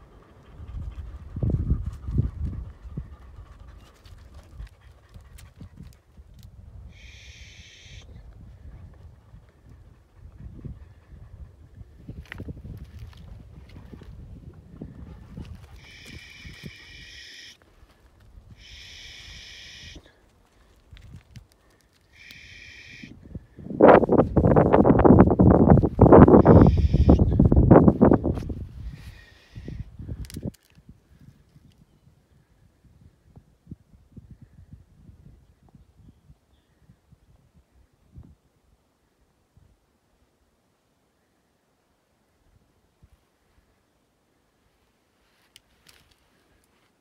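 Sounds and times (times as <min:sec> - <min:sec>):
footsteps on stony ground: 0:12.1 - 0:14.0.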